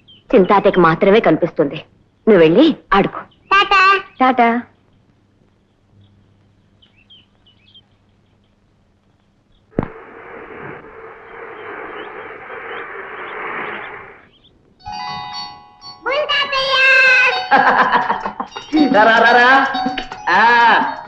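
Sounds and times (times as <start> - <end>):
quiet film soundtrack: 0.0 - 21.0
faint high chirps: 3.2 - 21.0.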